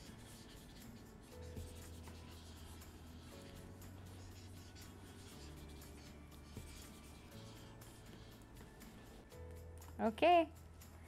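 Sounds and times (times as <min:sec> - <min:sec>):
pens scratching on paper: 0:00.0 - 0:09.3
soft background music: 0:00.0 - 0:11.0.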